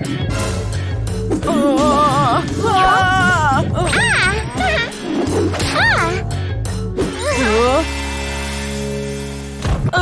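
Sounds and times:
background music: 0.0 - 10.0
cartoon character vocalizations: 1.4 - 5.0.

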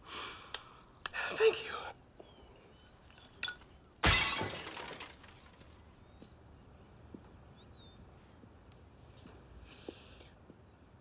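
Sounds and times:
drinking glass smashing: 3.1 - 5.9.

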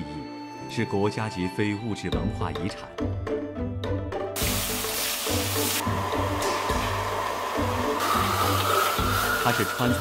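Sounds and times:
food sizzling in hot oil: 4.4 - 10.0
wok burner rushing: 4.4 - 10.0.

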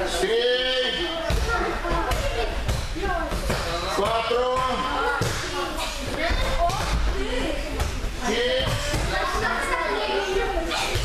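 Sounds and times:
children's voices echoing: 0.8 - 11.0.

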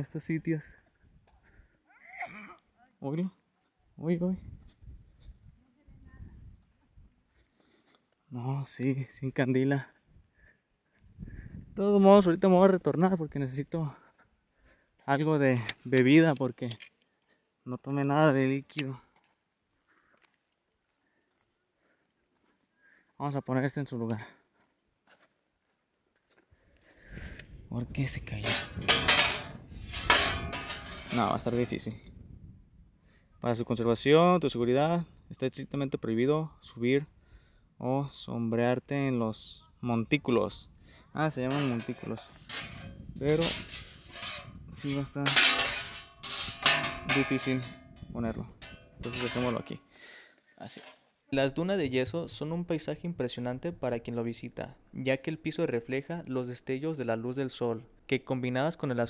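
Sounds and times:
metal sign clanking and rattling: 28.4 - 31.8, 41.5 - 49.8.

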